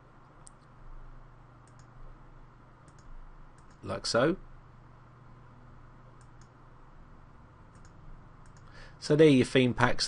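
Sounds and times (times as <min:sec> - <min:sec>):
low steady hum: 0:00.0 - 0:10.0
computer mouse clicks: 0:00.4 - 0:00.7, 0:01.6 - 0:02.0, 0:02.8 - 0:03.9, 0:06.2 - 0:06.6, 0:07.7 - 0:08.8.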